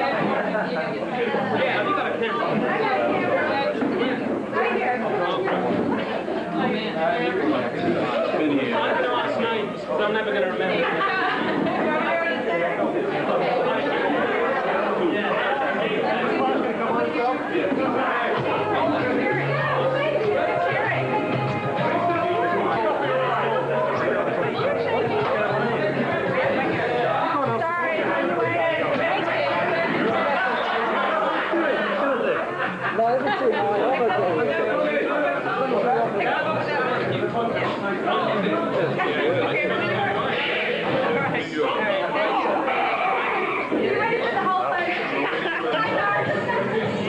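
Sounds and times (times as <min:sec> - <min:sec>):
people chattering: 0:00.0 - 0:47.0.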